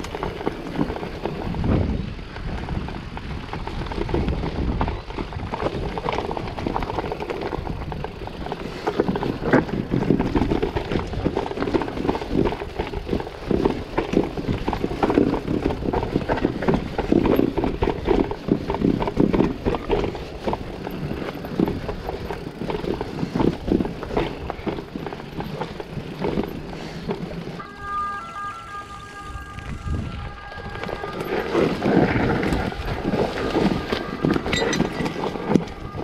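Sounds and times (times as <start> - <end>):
mountain bike rattling over stones: 0.0 - 36.0.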